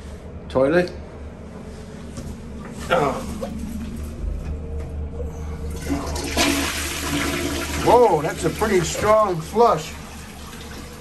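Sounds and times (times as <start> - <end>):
toilet flushing: 5.7 - 11.0.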